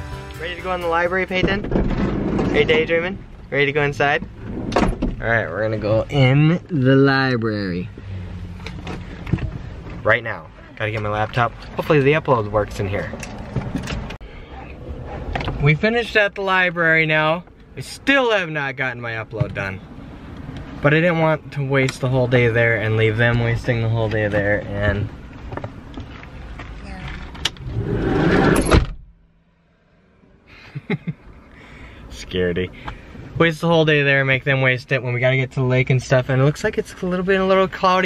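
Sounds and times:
low van cabin noise: 0:00.0 - 0:29.5
car door opening: 0:04.2 - 0:05.2, 0:27.1 - 0:29.1.

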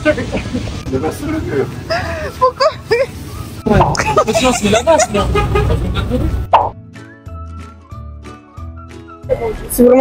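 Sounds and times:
street noise: 0:00.0 - 0:10.0
young men laughing and talking: 0:00.2 - 0:06.5
light background music: 0:02.6 - 0:10.0.

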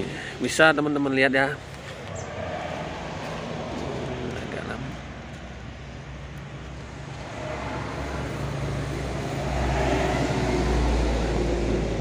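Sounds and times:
passing motor vehicle rumble: 0:01.5 - 0:12.0.

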